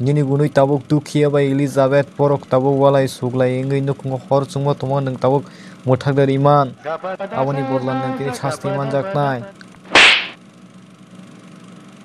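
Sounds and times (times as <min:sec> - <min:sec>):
whoosh sound effect: 0:09.9 - 0:10.4.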